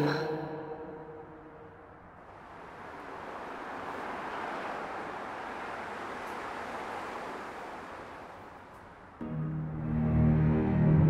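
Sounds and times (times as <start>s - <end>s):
distant city traffic: 0.8s - 10.2s.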